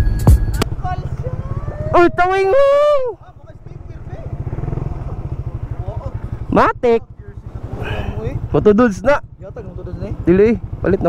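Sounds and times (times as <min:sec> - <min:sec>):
small motorcycle engine idling: 0:00.0 - 0:11.0.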